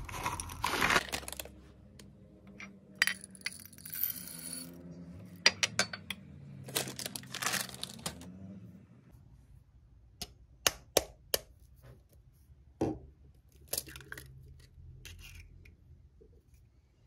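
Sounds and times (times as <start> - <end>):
chocolate chips rattling into glass bowl: 3.4 - 4.7, 6.7 - 8.1.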